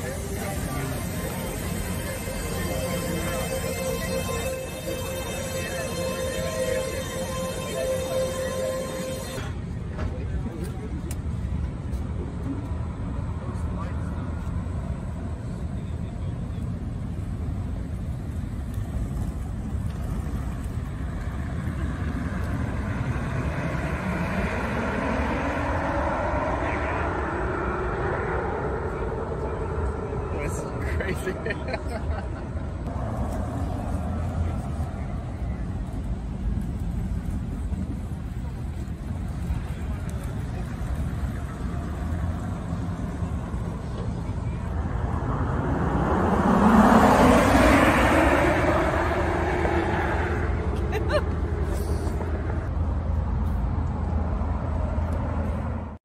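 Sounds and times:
electric vehicle whine passing: 0.0s - 9.9s, 16.7s - 53.0s
people talking: 0.0s - 16.9s, 28.1s - 32.6s, 37.6s - 45.0s
low outdoor rumble: 0.0s - 56.0s
person laughing: 30.8s - 32.5s, 50.7s - 52.1s.

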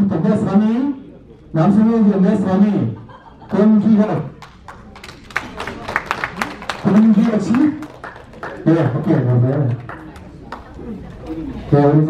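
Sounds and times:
faint indistinct voices: 0.3s - 2.1s, 9.6s - 12.0s.

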